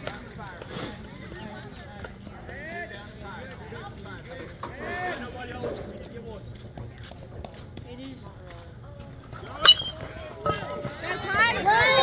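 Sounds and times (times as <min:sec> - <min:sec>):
sharp high-pitched ping: 0:09.7 - 0:10.1.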